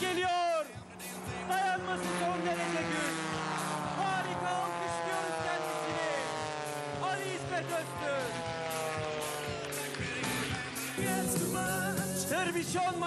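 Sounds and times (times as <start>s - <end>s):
propeller plane engine droning: 0.0s - 13.0s.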